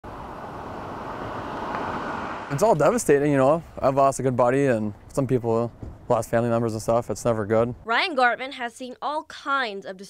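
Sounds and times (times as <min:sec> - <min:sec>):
highway traffic rushing: 0:00.0 - 0:07.8.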